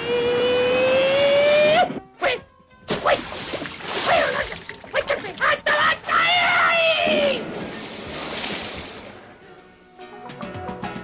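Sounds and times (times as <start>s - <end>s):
water splashing: 2.9s - 6.1s, 6.9s - 9.2s.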